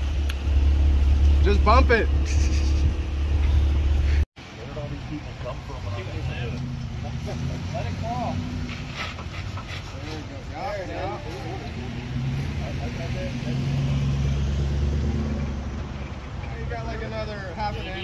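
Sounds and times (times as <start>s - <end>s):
truck engine rumbling: 0.0s - 18.0s.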